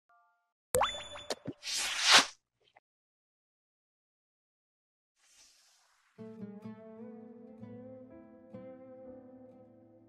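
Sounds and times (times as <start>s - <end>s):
pop with upward pitch glide: 0.8s - 1.9s.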